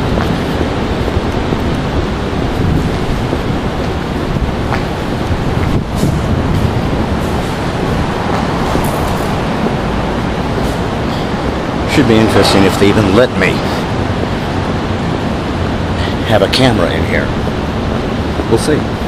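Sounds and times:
wind rumbling on microphone: 0:00.0 - 0:19.0.

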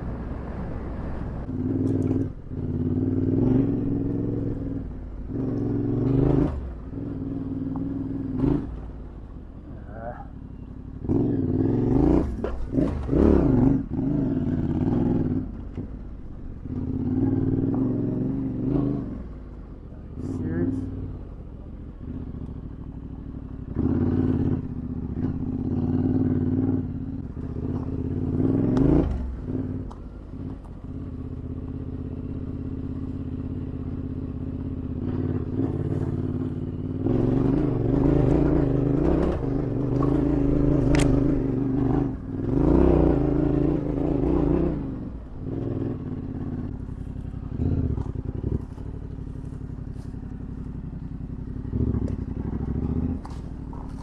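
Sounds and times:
motorcycle engine revving: 0:00.0 - 0:54.0
clatter: 0:34.8 - 0:42.5, 0:45.5 - 0:54.0.

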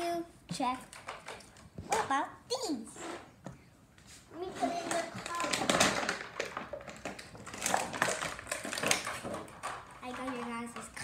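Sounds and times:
toy pieces tapping and rustling: 0:00.5 - 0:02.1, 0:04.6 - 0:11.0.

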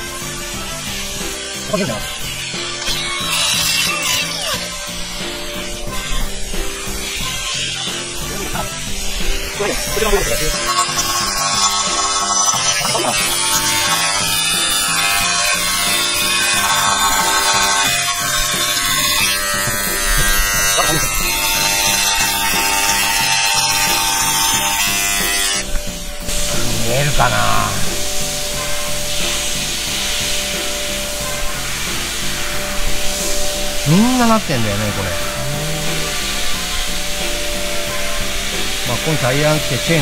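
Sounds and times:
background music: 0:00.0 - 0:40.0
rotary tool buzzing on metal: 0:00.0 - 0:40.0.

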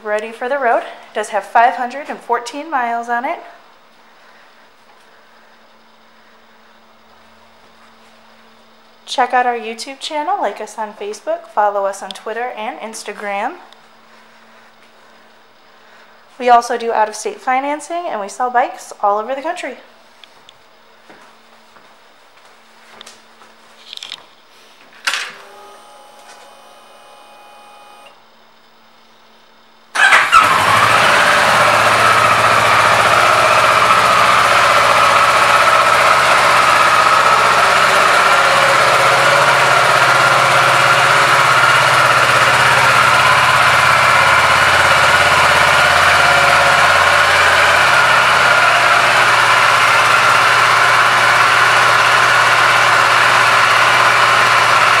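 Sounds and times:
faint electrical hum: 0:00.0 - 0:30.0
motorcycle engine idling: 0:30.0 - 0:55.0.

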